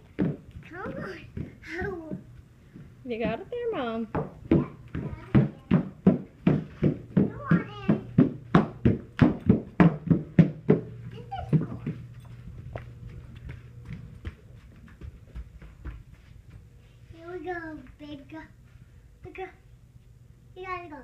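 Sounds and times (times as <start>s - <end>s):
shoes clacking on hardwood floor: 4.1s - 16.3s.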